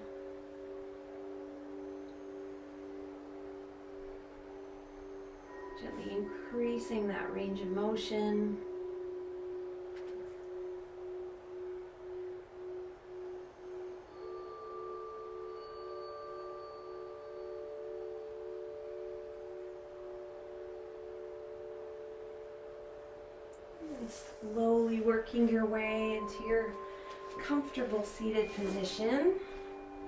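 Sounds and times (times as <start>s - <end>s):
higher steady ringing tones: 0.0s - 30.0s
low wavering ringing tone: 0.0s - 30.0s.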